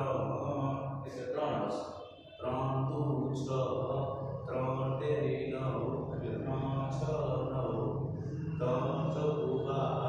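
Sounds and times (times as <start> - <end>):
man lecturing: 0.0 - 10.0.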